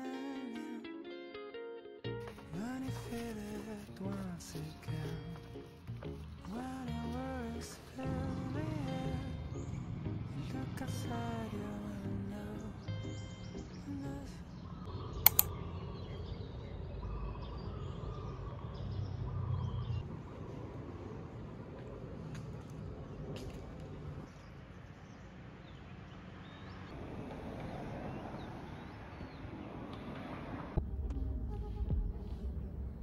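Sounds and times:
sharp click: 0:15.2 - 0:15.5.

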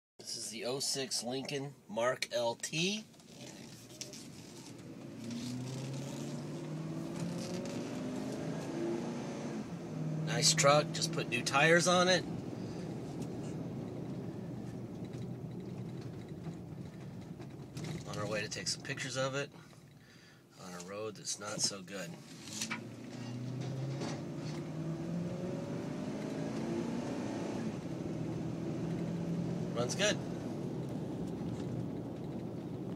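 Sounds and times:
tyre and road noise: 0:02.8 - 0:20.0, 0:20.6 - 0:32.9
truck engine accelerating: 0:04.1 - 0:19.1, 0:22.4 - 0:32.9.

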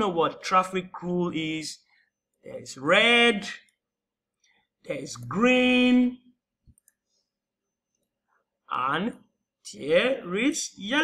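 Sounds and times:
person speaking: 0:00.0 - 0:03.8, 0:04.6 - 0:07.0
computer mouse click: 0:06.6 - 0:07.0.

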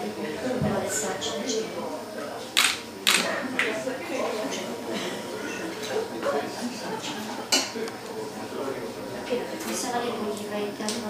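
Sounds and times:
faint background talk: 0:00.0 - 0:11.0.

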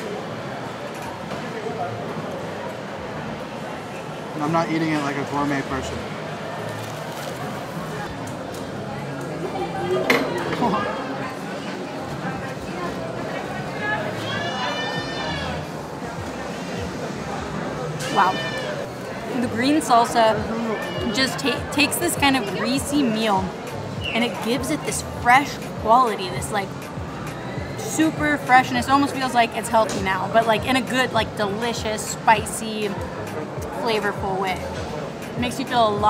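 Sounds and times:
background chatter of voices: 0:00.0 - 0:36.0
background noise: 0:00.0 - 0:36.0.

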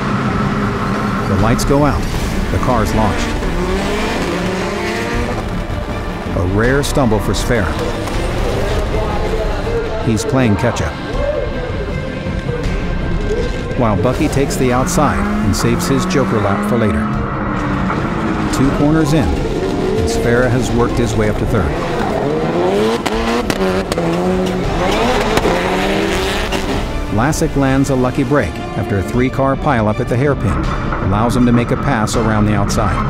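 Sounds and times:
race car engines and tyres: 0:00.0 - 0:33.0
tyre noise: 0:17.3 - 0:27.3.

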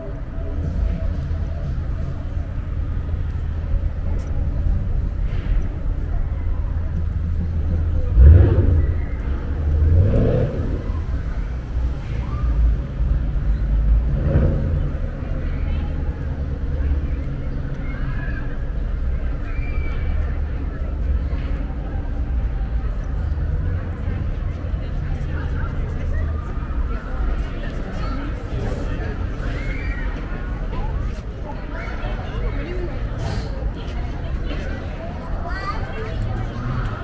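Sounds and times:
passers-by talking: 0:00.0 - 0:37.0
traffic rumble: 0:00.0 - 0:37.0
vehicle passing and accelerating: 0:00.6 - 0:17.8, 0:35.8 - 0:37.0.

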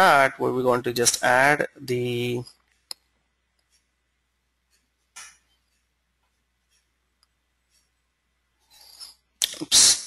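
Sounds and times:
person sneezing: 0:09.5 - 0:10.0.

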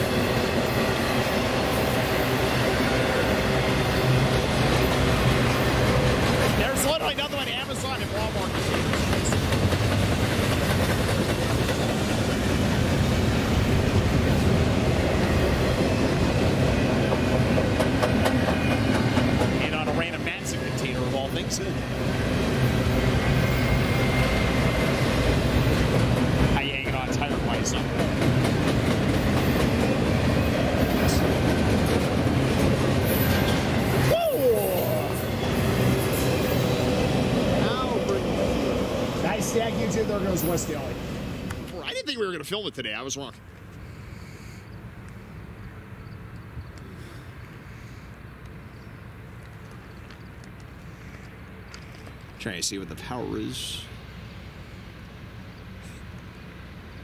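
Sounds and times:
train wheels on rails: 0:00.0 - 0:42.7.

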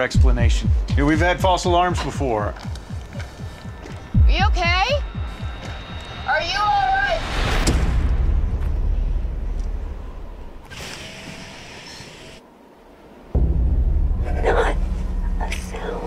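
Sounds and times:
deep rumbling swell: 0:02.7 - 0:10.6, 0:13.3 - 0:16.0
sharp hit: 0:05.0 - 0:10.7, 0:13.4 - 0:15.8.

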